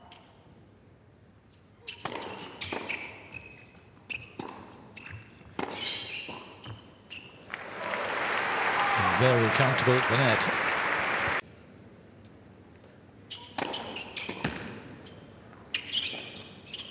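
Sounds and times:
shoe squeaks on hard court: 0:01.8 - 0:07.5, 0:13.3 - 0:16.9
crowd applause: 0:07.5 - 0:11.4.

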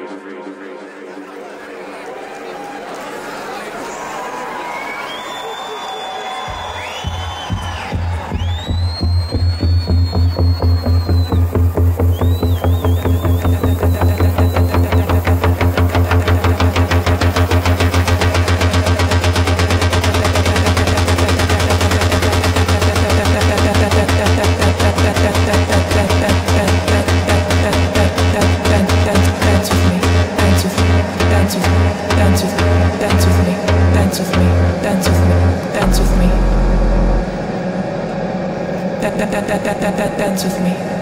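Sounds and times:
electronic dance music: 0:00.0 - 0:41.0
heavy bass and driving beat: 0:06.5 - 0:40.7.

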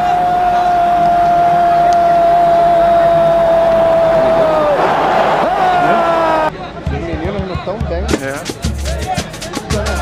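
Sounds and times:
man shouting goal: 0:00.0 - 0:06.5.

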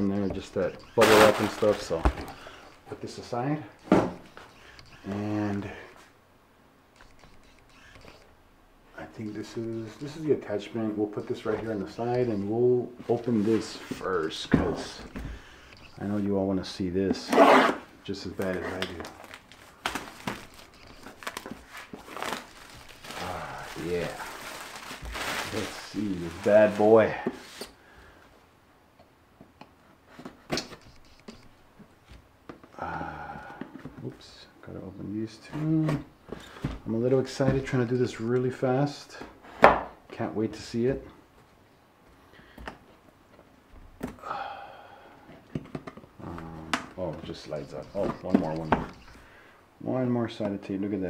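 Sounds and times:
packaging crinkling: 0:00.8 - 0:02.8, 0:18.4 - 0:27.1
hands handling cardboard box: 0:18.4 - 0:27.8, 0:45.6 - 0:49.2.

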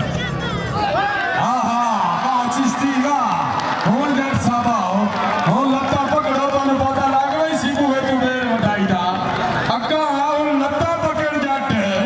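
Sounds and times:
man speaking: 0:01.4 - 0:12.0.

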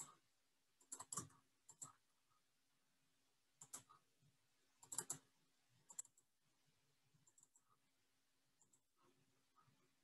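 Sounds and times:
computer keys and mouse clicking: 0:00.0 - 0:00.2, 0:00.8 - 0:02.1, 0:03.6 - 0:04.1, 0:04.8 - 0:06.3, 0:07.2 - 0:07.8, 0:08.6 - 0:09.0
faint steady hum: 0:00.0 - 0:10.0.

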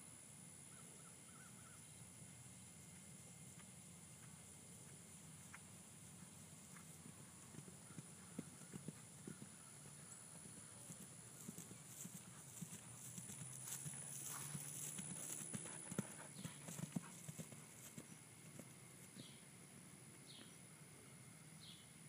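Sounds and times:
horse hoofbeats on grass: 0:03.6 - 0:19.4.

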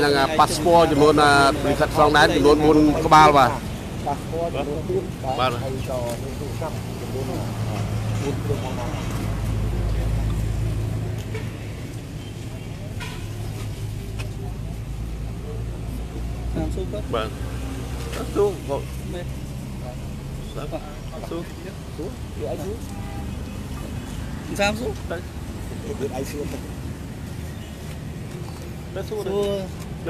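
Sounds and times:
voices: 0:00.0 - 0:30.0.

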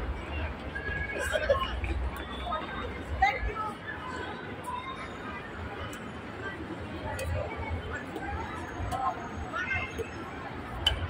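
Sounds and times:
distant voices and chatter: 0:00.0 - 0:11.0.

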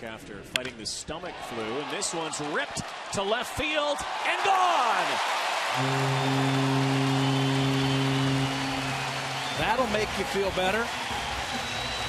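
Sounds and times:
crowd cheering: 0:01.3 - 0:12.0
held low chord over loudspeakers: 0:05.8 - 0:09.4.

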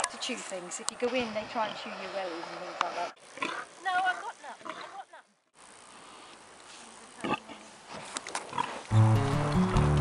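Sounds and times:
pig grunting: 0:03.4 - 0:05.1
music: 0:08.9 - 0:10.0.

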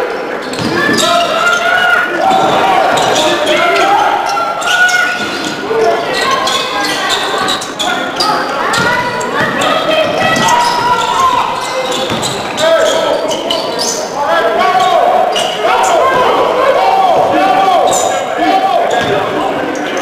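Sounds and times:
sneakers squeaking: 0:00.0 - 0:20.0.

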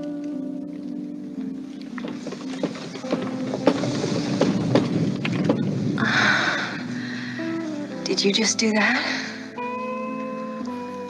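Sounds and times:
held music notes: 0:00.0 - 0:11.0
hissing wash: 0:01.8 - 0:09.6.

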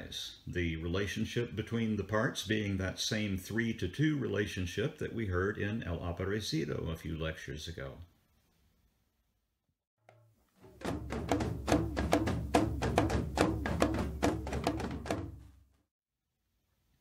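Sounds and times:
drum ensemble playing: 0:10.6 - 0:15.5
talking drum pitch gliding: 0:10.7 - 0:15.3.

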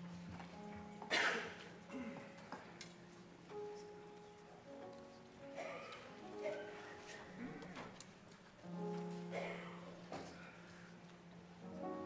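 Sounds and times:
soft keyboard chords: 0:00.0 - 0:12.0.

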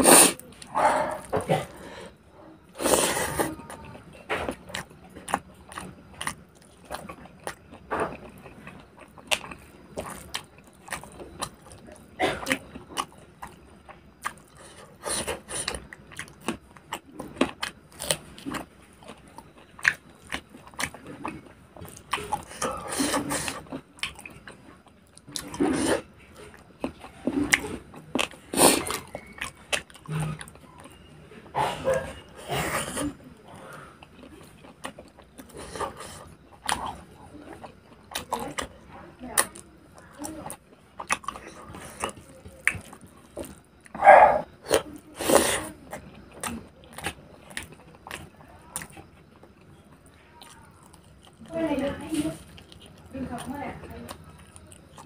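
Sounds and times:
person chewing food: 0:00.0 - 0:55.0.

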